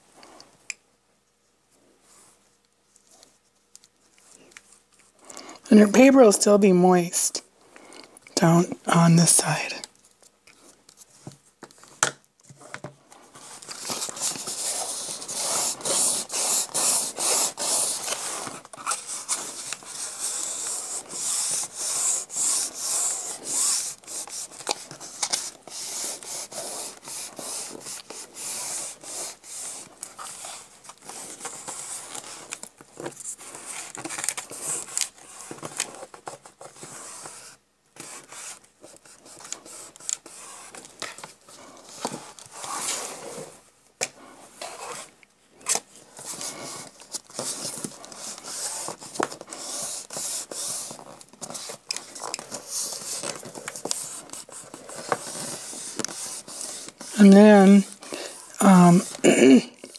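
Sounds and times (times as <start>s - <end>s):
hands rubbing paper: 13.3s - 43.5s, 46.1s - 59.3s.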